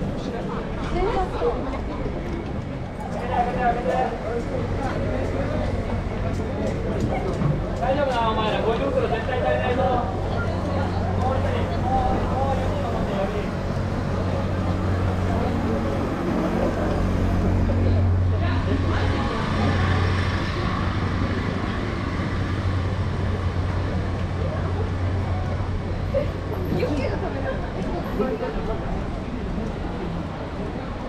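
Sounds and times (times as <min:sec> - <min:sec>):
passing traffic: 0:00.0 - 0:31.0
voices of passers-by: 0:00.0 - 0:31.0.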